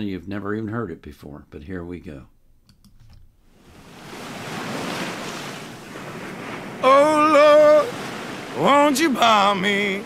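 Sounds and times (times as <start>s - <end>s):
ocean surf on beach: 3.5s - 10.0s
man singing held note: 6.8s - 8.0s.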